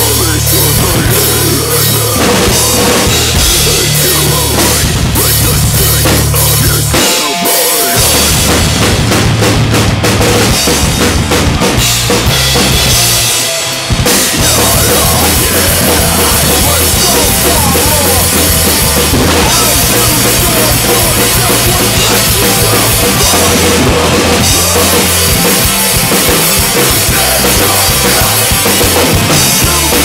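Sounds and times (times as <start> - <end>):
acoustic drum kit: 0.0 - 30.0
rock song with bass and guitars: 0.0 - 30.0.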